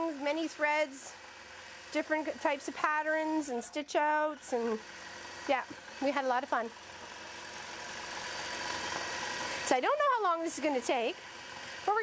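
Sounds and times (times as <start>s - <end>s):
quilting machine stitching: 0.0s - 12.0s.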